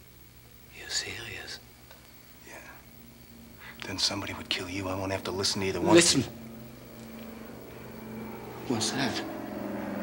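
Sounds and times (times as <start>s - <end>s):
low steady hum: 0.0s - 10.0s
man whispering breathily: 0.7s - 1.6s.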